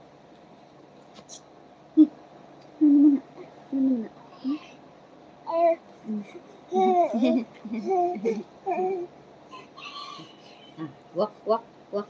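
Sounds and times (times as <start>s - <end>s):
person cooing: 2.0s - 2.2s, 2.8s - 4.7s.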